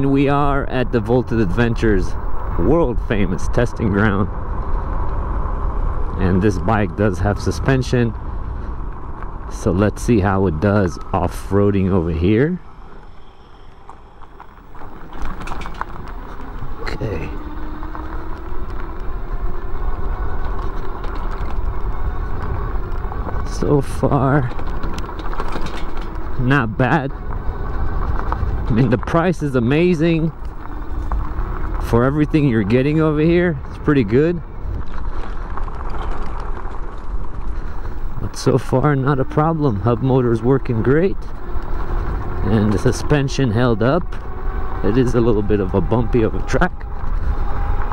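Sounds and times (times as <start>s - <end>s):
bike tyres rumbling on dirt trail: 0.0s - 47.9s
wind noise on microphone: 0.0s - 47.9s
clicks and rattles over bumps: 12.9s - 32.2s, 34.6s - 39.5s.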